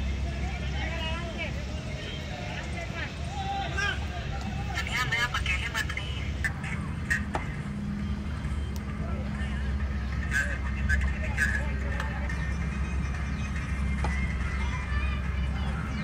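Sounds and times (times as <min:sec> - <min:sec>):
distant players shouting: 0:00.0 - 0:16.0
steady low rumble: 0:00.0 - 0:16.0.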